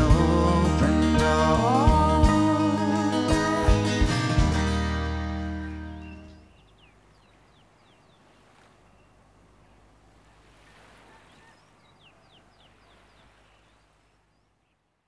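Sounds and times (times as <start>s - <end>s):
acoustic band chord: 0.0s - 6.4s
bird chirping: 5.4s - 14.9s.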